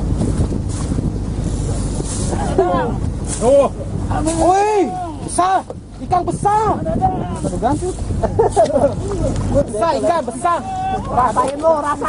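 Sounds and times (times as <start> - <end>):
boat engine rumbling: 0.0 - 12.0
man calling out: 2.6 - 7.6, 9.1 - 12.0.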